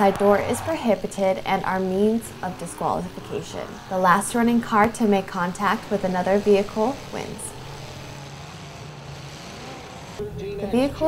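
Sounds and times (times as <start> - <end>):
car engine running: 4.4 - 10.2.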